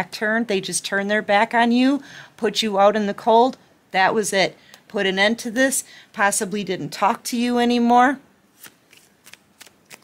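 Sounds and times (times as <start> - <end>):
cards shuffled by hand: 8.5 - 10.0.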